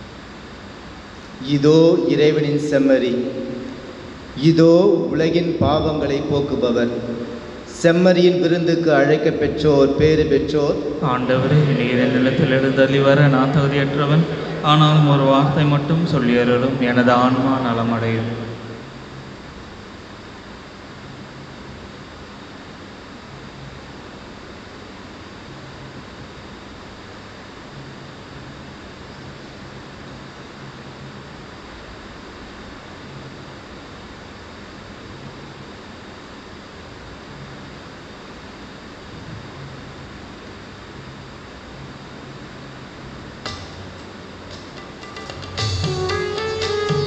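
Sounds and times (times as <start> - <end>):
faint low hum: 0.0 - 47.0
room tone hiss: 0.0 - 47.0.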